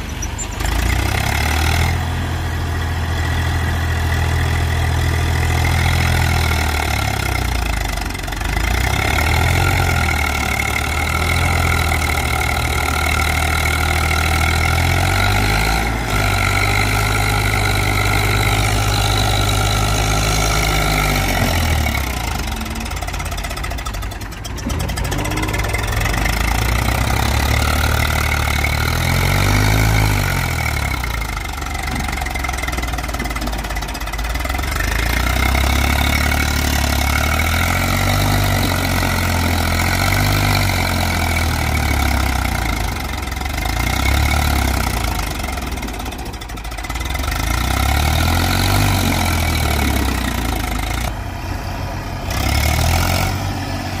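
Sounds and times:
backhoe loader engine running: 0.0s - 54.0s
tractor diesel engine under load: 0.0s - 54.0s.

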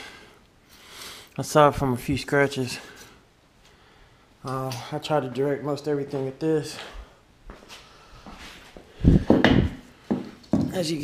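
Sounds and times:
footsteps on concrete floor: 6.0s - 11.0s.

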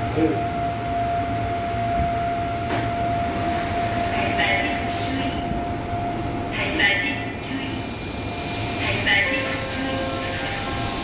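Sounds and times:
train rumble: 0.0s - 11.0s
train doors hissing open: 4.8s - 5.4s, 7.6s - 11.0s.

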